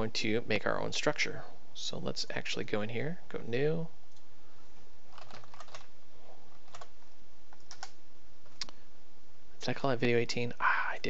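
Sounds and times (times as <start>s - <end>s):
computer keyboard typing: 5.1s - 5.9s, 6.5s - 8.0s.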